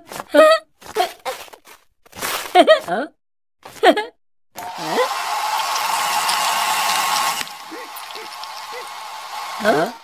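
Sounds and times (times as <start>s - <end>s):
hair dryer blowing: 4.6s - 10.0s.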